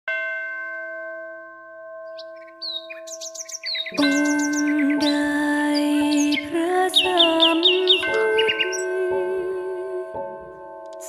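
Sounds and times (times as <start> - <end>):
bell ringing: 0.1 - 6.3
birds chirping: 2.1 - 9.5.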